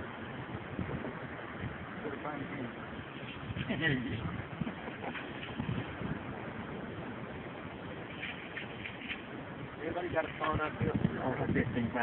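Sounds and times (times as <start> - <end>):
sea waves: 0.0 - 12.0
wind: 0.0 - 12.0.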